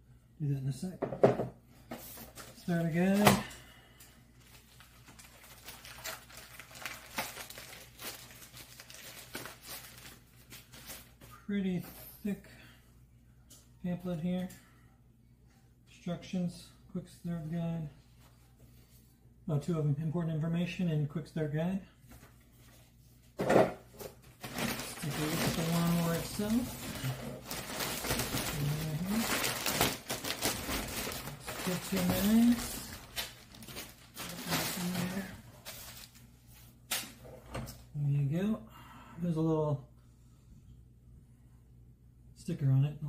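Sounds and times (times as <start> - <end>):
plastic packaging crinkling: 4.4 - 11.2, 24.3 - 36.3
paper booklets rustling: 4.4 - 11.3, 24.3 - 36.2.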